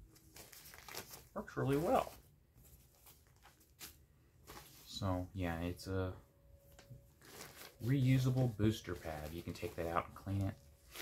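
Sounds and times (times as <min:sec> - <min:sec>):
plastic crinkle: 0:00.0 - 0:05.0, 0:06.6 - 0:11.0
plastic rustling: 0:00.0 - 0:05.2, 0:06.6 - 0:11.0.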